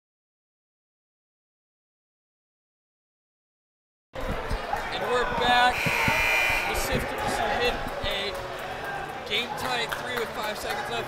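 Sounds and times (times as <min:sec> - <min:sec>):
crowd chattering: 0:04.2 - 0:11.0
brief high tone: 0:05.7 - 0:07.0.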